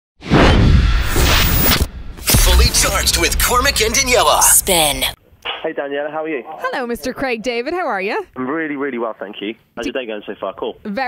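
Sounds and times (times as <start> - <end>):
whoosh sound effect: 0.2 - 5.2
deep bass rumble: 0.5 - 5.2.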